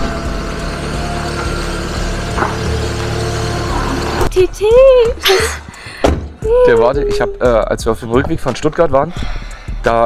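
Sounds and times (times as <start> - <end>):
car engine rumbling at low revs: 0.0 - 5.2
background music with held notes: 0.0 - 10.0.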